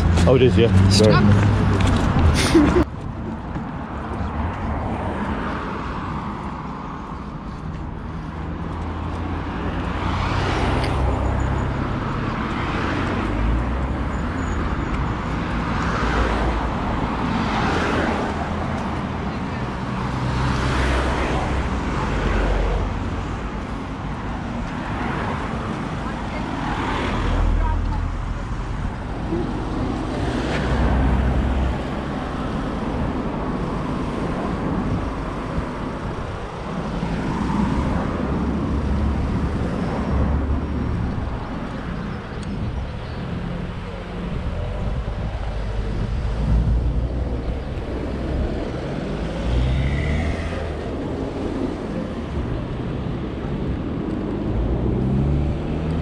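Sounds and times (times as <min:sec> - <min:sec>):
steady road traffic: 0:00.0 - 0:56.0.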